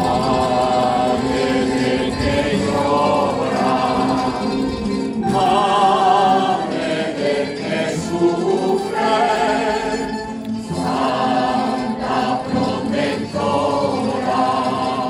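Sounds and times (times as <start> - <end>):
mixed choir singing a hymn: 0.0 - 15.0.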